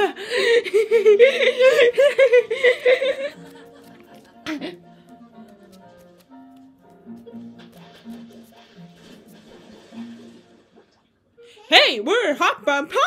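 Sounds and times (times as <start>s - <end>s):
background music with light percussion: 1.4s - 10.7s.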